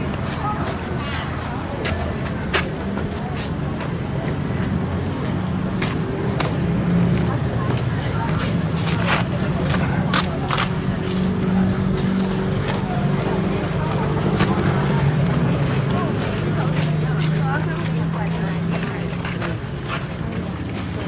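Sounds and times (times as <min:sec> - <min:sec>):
people talking: 0:00.0 - 0:21.0
traffic running: 0:00.0 - 0:21.0.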